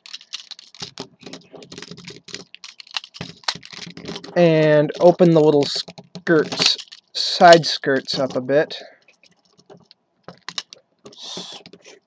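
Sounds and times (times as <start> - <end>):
plastic toy parts clicking: 0.0 - 8.5, 9.1 - 11.9.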